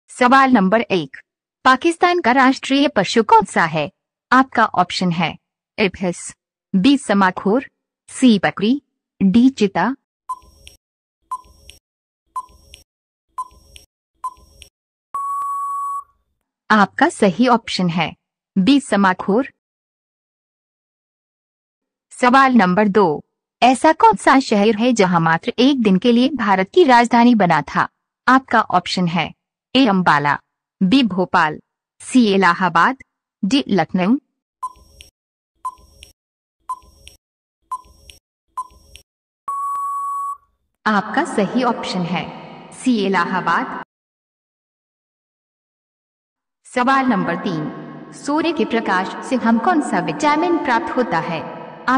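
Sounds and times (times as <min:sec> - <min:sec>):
countdown timer beeps: 0:15.2 - 0:16.0, 0:39.5 - 0:40.4
long steady beep: 0:15.2 - 0:16.1, 0:39.5 - 0:40.4.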